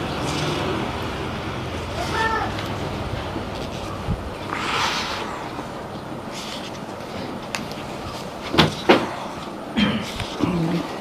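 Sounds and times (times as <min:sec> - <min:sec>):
book pages rustling: 0:03.5 - 0:04.0, 0:05.9 - 0:08.9.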